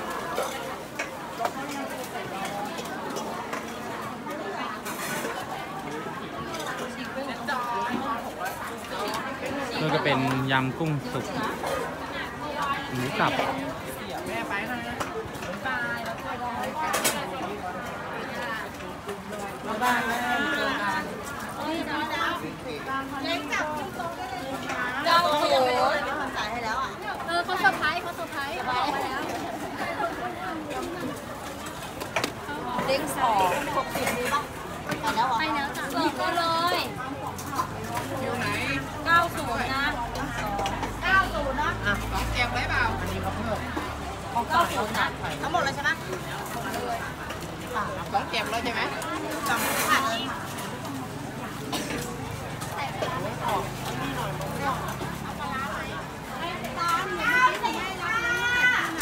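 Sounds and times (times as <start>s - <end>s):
indistinct chatter of voices: 0.0s - 59.0s.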